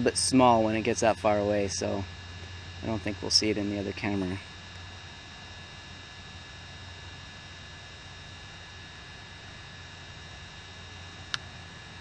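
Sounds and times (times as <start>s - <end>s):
faint high steady tones: 0.0s - 12.0s
low electrical hum and hiss: 0.0s - 12.0s.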